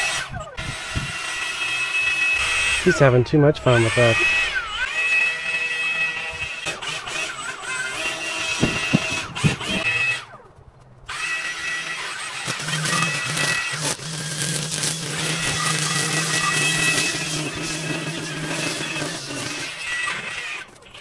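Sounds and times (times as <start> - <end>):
string trimmers whining: 0.0 - 21.0.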